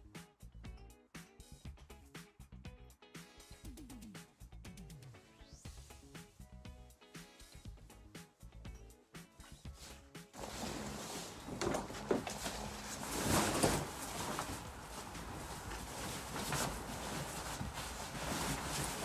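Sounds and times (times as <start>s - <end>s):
background music: 0.0s - 19.0s
rustling of horse rug: 9.7s - 19.0s.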